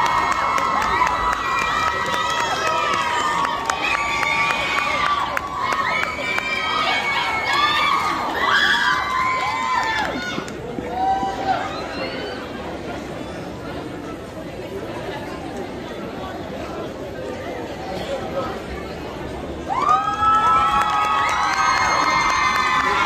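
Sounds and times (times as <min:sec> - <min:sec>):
crowd cheering and shouting: 0:00.0 - 0:12.9, 0:19.6 - 0:23.0.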